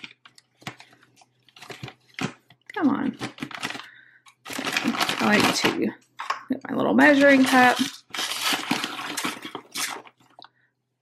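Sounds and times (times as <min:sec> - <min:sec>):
plastic bag crinkling: 0:00.0 - 0:06.4, 0:07.0 - 0:10.5.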